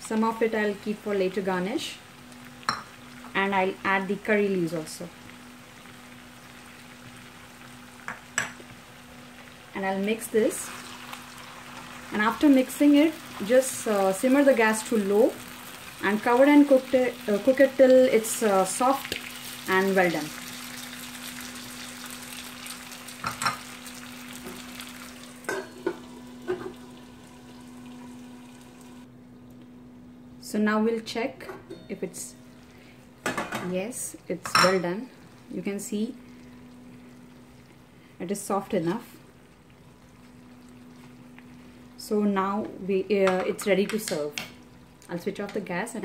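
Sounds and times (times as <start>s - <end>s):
potatoes sizzling in oil: 0.0s - 29.1s
faint hum: 0.0s - 46.0s.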